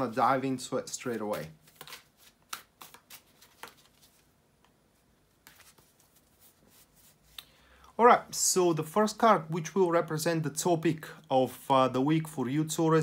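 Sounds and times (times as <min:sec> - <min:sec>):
soft card rustling: 0:00.0 - 0:07.5
cards shuffling: 0:01.0 - 0:04.3, 0:05.3 - 0:07.5.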